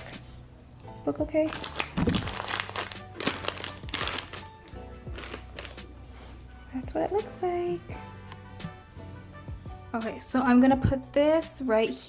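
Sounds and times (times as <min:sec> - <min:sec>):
background music: 0:00.0 - 0:12.0
snack bags crinkling: 0:01.4 - 0:05.9.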